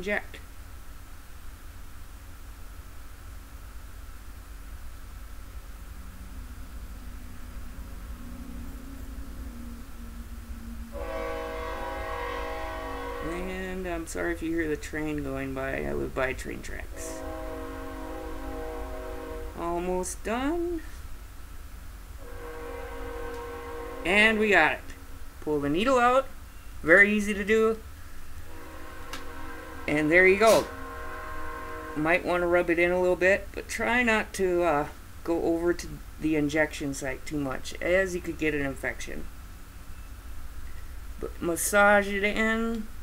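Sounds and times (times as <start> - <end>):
train rumbling past: 5.2 - 21.1, 21.8 - 35.2
train horn chord: 6.0 - 14.3, 16.9 - 20.0, 22.2 - 25.4, 28.4 - 32.6.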